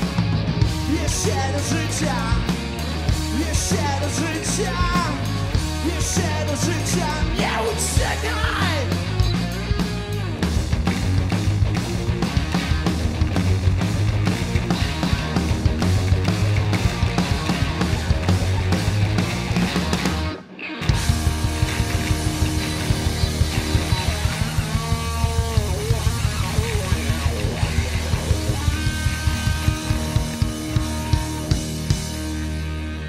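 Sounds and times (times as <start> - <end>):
steady drum beat: 0.0 - 32.7
live rock band playing: 0.0 - 33.0
sliding guitar notes: 0.0 - 33.0.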